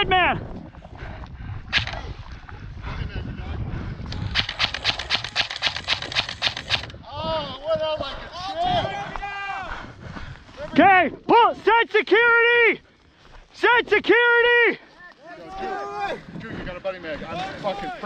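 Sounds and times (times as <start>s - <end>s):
airsoft rifle rapid fire: 4.2s - 7.0s.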